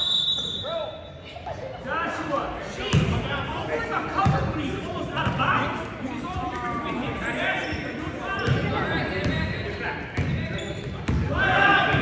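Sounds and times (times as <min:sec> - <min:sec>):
referee's whistle: 0:00.0 - 0:01.2
players and spectators shouting: 0:11.2 - 0:12.0.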